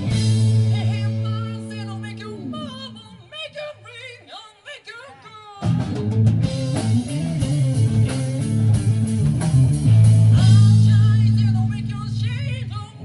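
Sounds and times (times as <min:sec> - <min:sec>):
drum kit: 0:00.0 - 0:02.0, 0:05.6 - 0:12.7
bass guitar: 0:00.0 - 0:03.2, 0:05.6 - 0:13.0
electric guitar: 0:00.0 - 0:04.0, 0:05.2 - 0:13.0.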